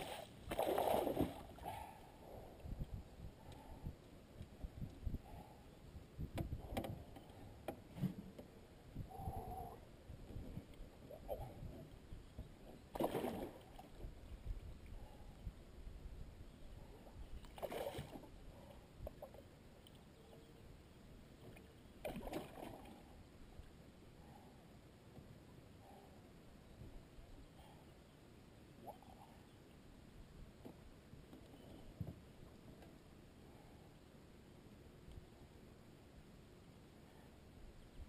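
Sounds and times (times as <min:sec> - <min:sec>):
water splashing around a net: 0:00.0 - 0:01.6, 0:12.9 - 0:13.8, 0:17.6 - 0:18.3, 0:22.0 - 0:23.0.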